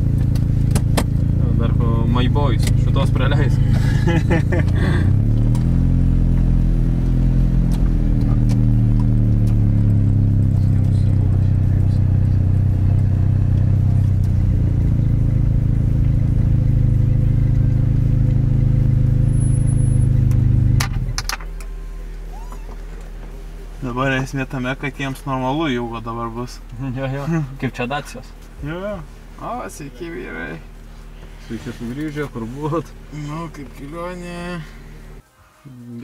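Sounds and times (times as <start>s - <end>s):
car engine running: 0.0s - 35.2s.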